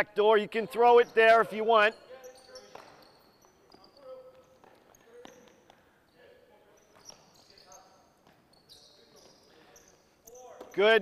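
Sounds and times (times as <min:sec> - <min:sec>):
sneaker squeaks: 0:00.8 - 0:11.0.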